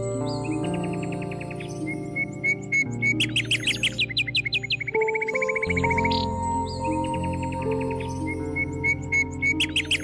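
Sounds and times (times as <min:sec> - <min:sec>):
birds chirping: 0:00.0 - 0:10.0
slow meditation music: 0:00.0 - 0:10.0.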